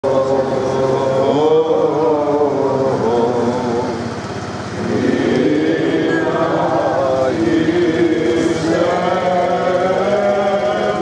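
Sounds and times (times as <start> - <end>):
men chanting a hymn: 0.0 - 11.0
steady low hum: 0.0 - 11.0.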